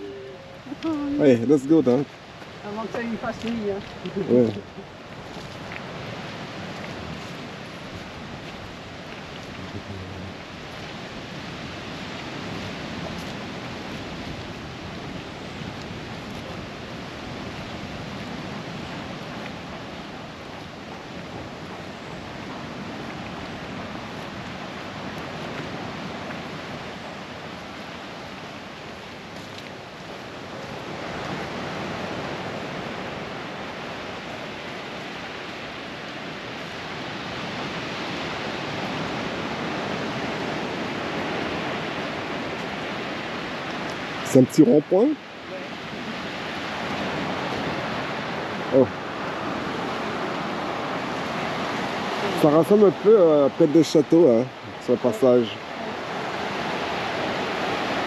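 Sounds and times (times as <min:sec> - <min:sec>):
sea surf on shore: 0:00.0 - 0:58.0.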